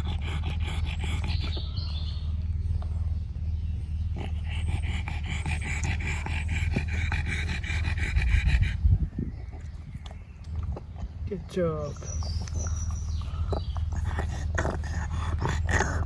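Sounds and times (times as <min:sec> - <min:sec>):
dog panting fast: 0:00.0 - 0:01.8, 0:04.1 - 0:09.6.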